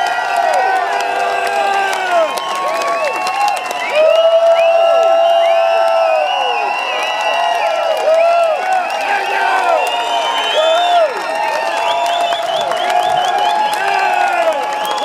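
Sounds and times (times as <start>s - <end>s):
crowd whooping and shouting: 0.0s - 15.0s
people clapping: 0.0s - 15.0s.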